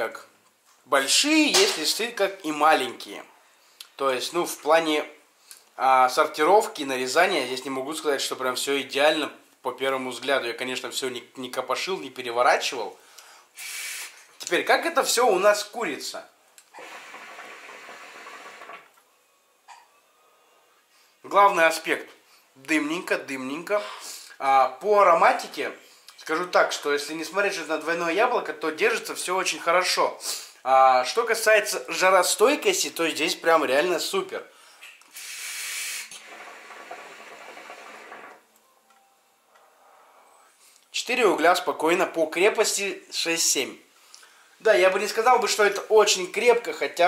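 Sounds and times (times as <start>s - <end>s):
hookah draw bubbling: 16.7s - 18.9s, 35.1s - 38.4s
hookah water bubbling: 16.7s - 18.9s.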